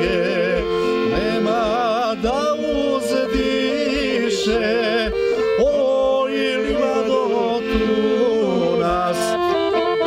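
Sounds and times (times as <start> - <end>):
men singing folk song: 0.0 - 9.8
accordion: 0.0 - 10.0.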